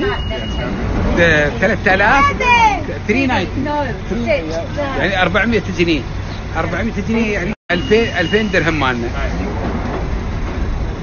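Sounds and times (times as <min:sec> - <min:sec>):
train rumbling inside carriage: 0:00.0 - 0:04.0, 0:08.0 - 0:11.0.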